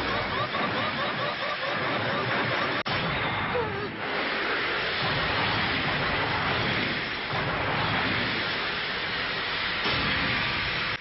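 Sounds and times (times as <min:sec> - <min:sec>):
toy car motor grinding and skidding: 0:00.0 - 0:02.9.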